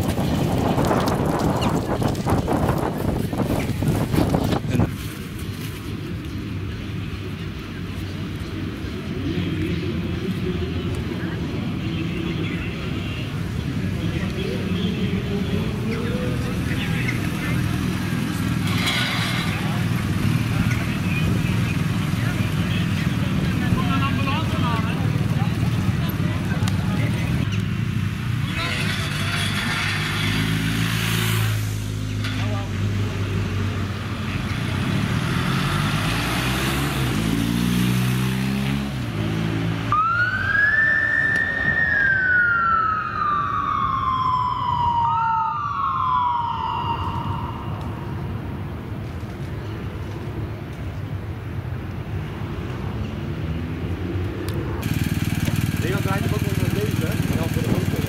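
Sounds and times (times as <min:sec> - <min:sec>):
motorcycle engines passing: 0:00.0 - 0:58.0.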